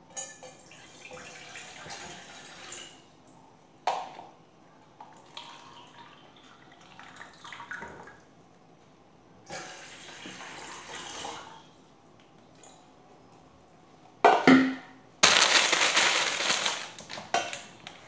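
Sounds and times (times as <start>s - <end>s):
container knocking on pot: 14.3s - 14.9s.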